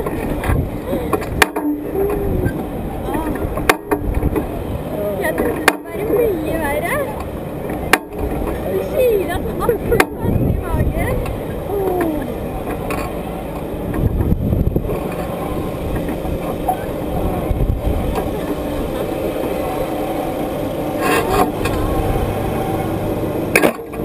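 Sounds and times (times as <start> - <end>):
wind rushing over microphone: 0.0 - 24.0.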